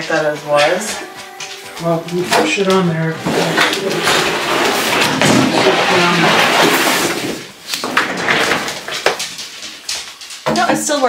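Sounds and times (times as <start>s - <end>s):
desk scraping across wooden floor: 2.0s - 8.9s
office chair knocks and rattles: 3.2s - 9.6s.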